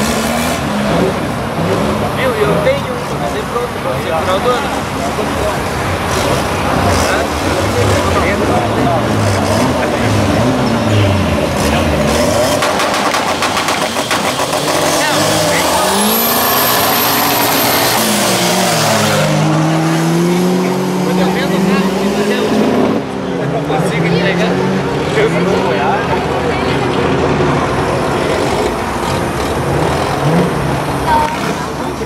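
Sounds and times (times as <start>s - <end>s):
race car engines revving: 0.0s - 32.0s.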